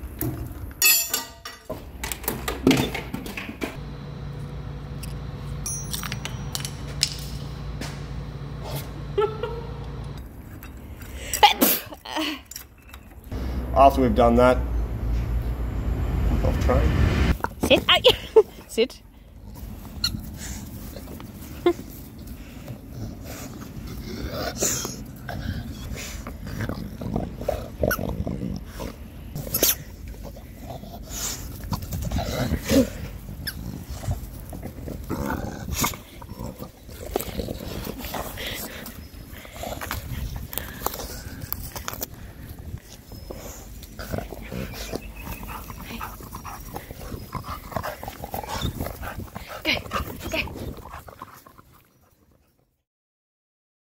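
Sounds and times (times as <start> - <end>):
dog sniffing and snuffling: 19.4 - 52.6.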